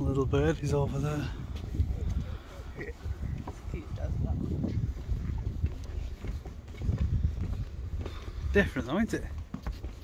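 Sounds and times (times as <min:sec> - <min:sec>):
footsteps on wooden deck: 0:00.0 - 0:10.0
wind rumble on microphone: 0:00.0 - 0:10.0.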